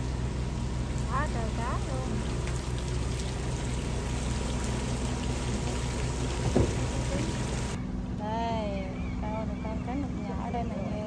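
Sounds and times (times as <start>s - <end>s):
rushing water: 0.0s - 7.8s
low engine hum: 0.0s - 11.0s.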